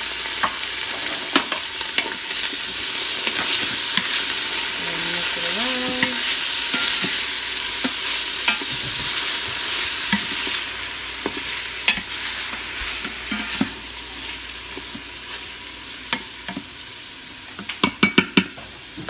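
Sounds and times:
food sizzling in oil: 0.0s - 19.0s.

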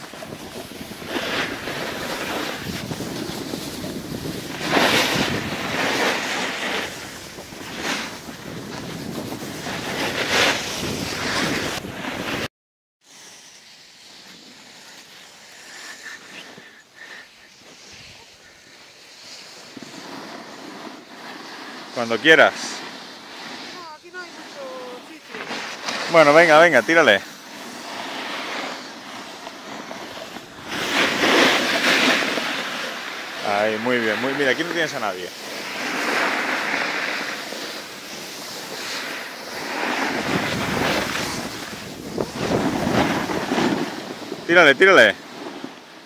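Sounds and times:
wind on microphone: 0.0s - 12.5s, 38.5s - 44.6s
skis scraping over snow: 0.0s - 46.0s.

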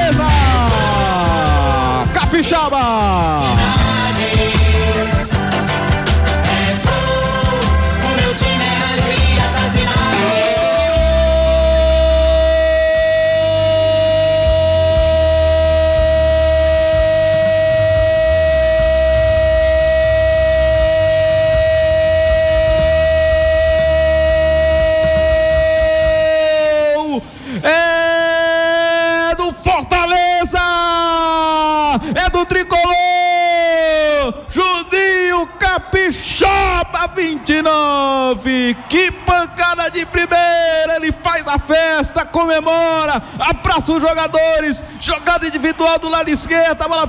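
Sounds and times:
commentator shouting goal: 0.0s - 3.9s, 10.0s - 47.0s
music: 0.0s - 26.9s, 38.8s - 47.0s.

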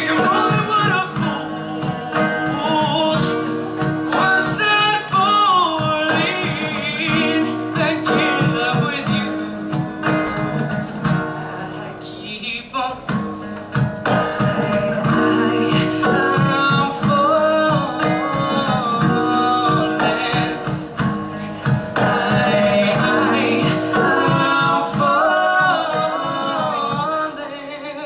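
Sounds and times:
man singing into microphone: 0.0s - 13.4s, 14.0s - 28.0s
acoustic guitar strumming: 0.0s - 28.0s.

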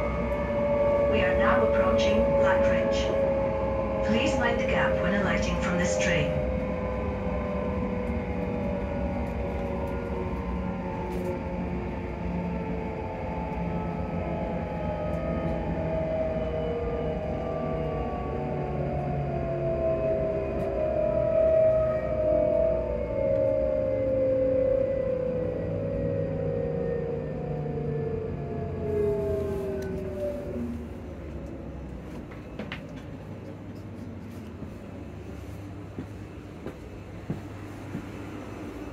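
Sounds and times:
train running rumble: 0.0s - 21.9s, 28.2s - 38.9s
train traction motors whining: 0.0s - 38.9s.

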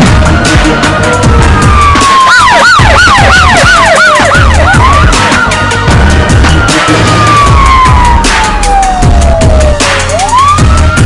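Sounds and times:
news music with heavy bass beat: 0.0s - 11.0s
wailing siren: 0.0s - 11.0s
fast yelping siren: 0.4s - 11.0s.

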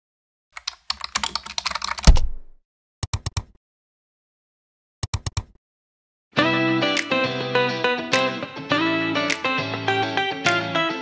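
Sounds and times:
keyboard typing: 0.6s - 2.4s, 3.0s - 3.6s, 5.0s - 5.6s.

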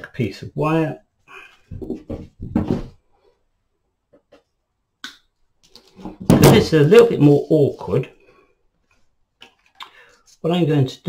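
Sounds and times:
person speaking: 0.0s - 2.0s, 6.3s - 8.2s, 9.8s - 11.0s.

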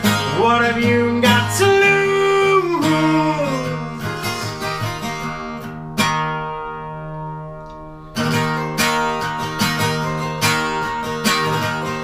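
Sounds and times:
acoustic guitar chord ringing: 0.0s - 12.0s.

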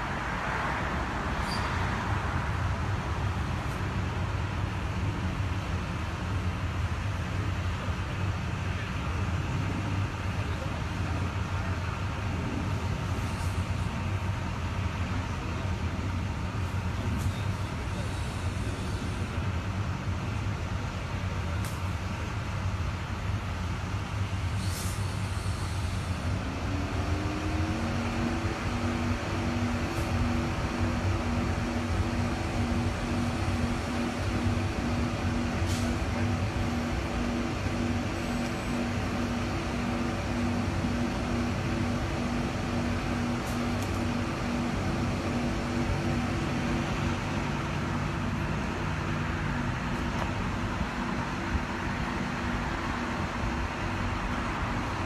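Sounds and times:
road traffic hum: 0.0s - 55.0s
vehicle engine running: 25.0s - 55.0s.

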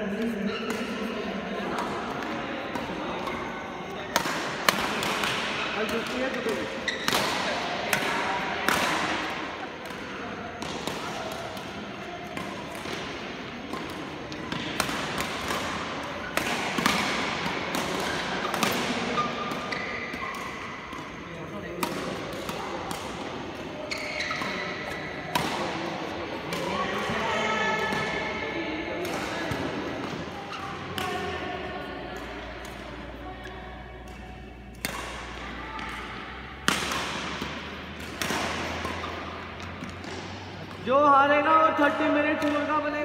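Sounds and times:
voices chattering: 0.0s - 43.0s
rackets striking shuttlecocks: 1.6s - 41.1s, 41.8s - 42.9s.

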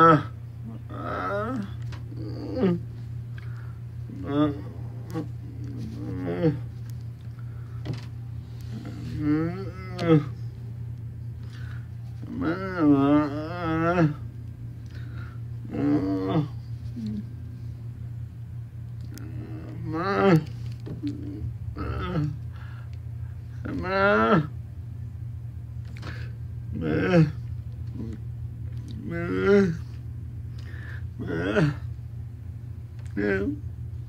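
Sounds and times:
voice bleating maa call: 0.0s - 2.9s, 19.1s - 22.4s, 23.6s - 24.6s, 28.9s - 29.9s, 31.2s - 31.9s
steady low hum: 0.0s - 34.0s.

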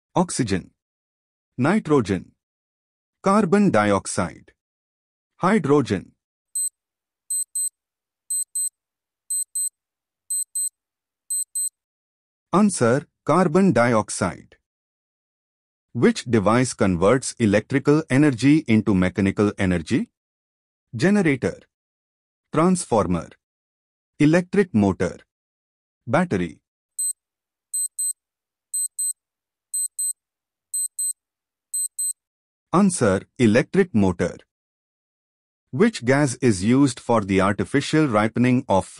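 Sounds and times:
high-pitched electronic clock ticks: 7.3s - 7.7s, 8.3s - 8.7s, 9.3s - 9.7s, 10.3s - 10.7s, 11.3s - 11.7s, 27.8s - 28.2s, 28.8s - 29.2s, 29.8s - 30.2s, 30.8s - 31.2s, 31.8s - 32.2s.

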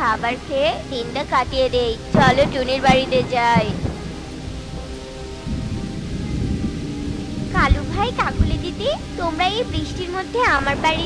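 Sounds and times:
heavy rain: 0.0s - 11.0s
rolling thunder: 0.0s - 11.0s.

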